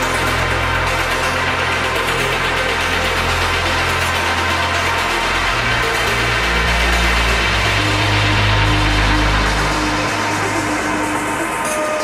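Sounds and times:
electronic dance music: 0:00.0 - 0:12.0
held bass line: 0:00.0 - 0:12.0
sustained synth tones: 0:00.0 - 0:12.0
higher synth note: 0:06.5 - 0:12.0.

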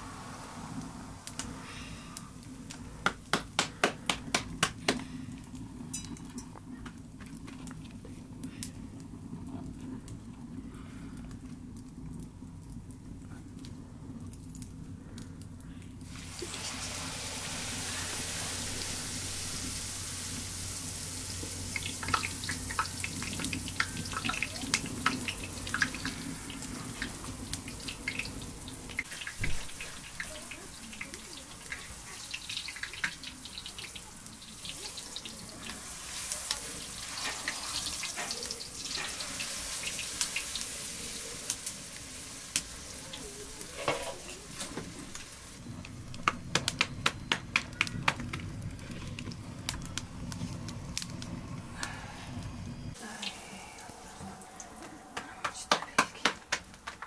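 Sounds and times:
oil popping and crackling: 0:00.0 - 0:53.9, 0:55.2 - 0:57.0
dough frying in hot oil: 0:00.0 - 0:54.6.

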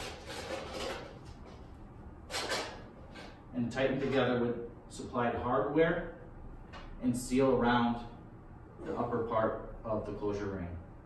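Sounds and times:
sheet metal scraping and rustling: 0:00.0 - 0:01.4.

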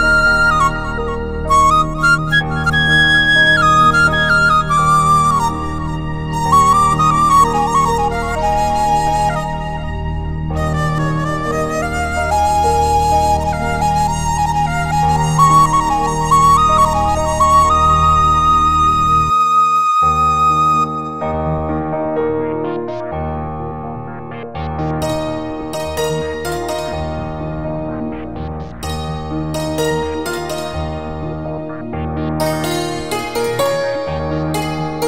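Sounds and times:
flute melody over drone: 0:00.0 - 0:35.0.

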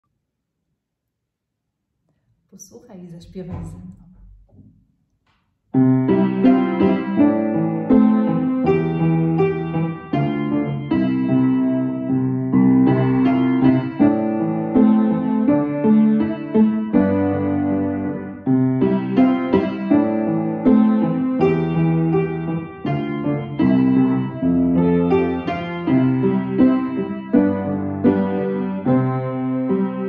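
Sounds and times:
piano chords: 0:05.7 - 0:30.0.

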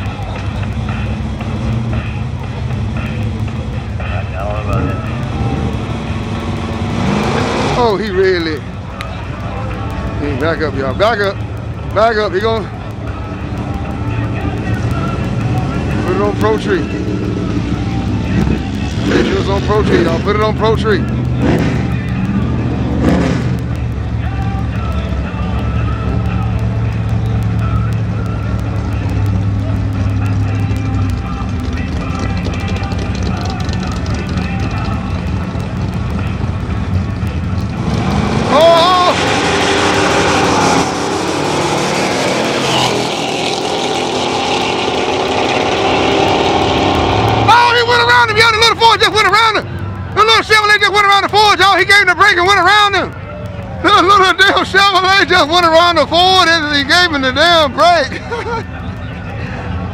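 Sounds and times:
truck engines idling and revving: 0:00.0 - 0:59.9.

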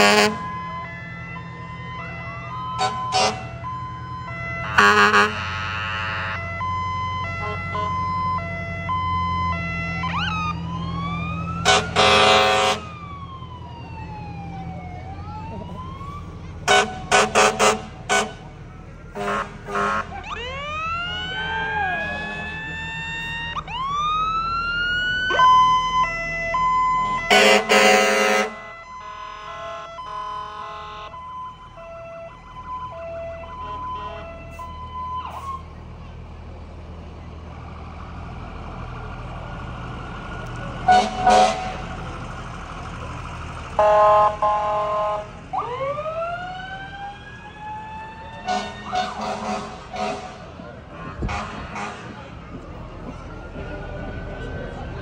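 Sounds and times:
air horn blasts: 0:00.0 - 0:01.2, 0:02.8 - 0:03.7, 0:04.6 - 0:06.6, 0:07.4 - 0:08.0, 0:11.6 - 0:13.0, 0:16.6 - 0:18.5, 0:19.2 - 0:20.2, 0:27.0 - 0:31.2, 0:33.5 - 0:34.7, 0:40.8 - 0:42.0, 0:43.8 - 0:45.3, 0:48.4 - 0:50.5, 0:51.2 - 0:52.2
fire engine sirens: 0:00.0 - 0:55.0
low engine rumble: 0:00.0 - 0:55.0.

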